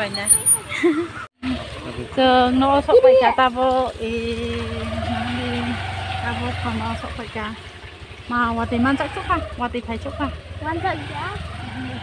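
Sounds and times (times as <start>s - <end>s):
motor scooter engine rumble: 0.0s - 12.0s.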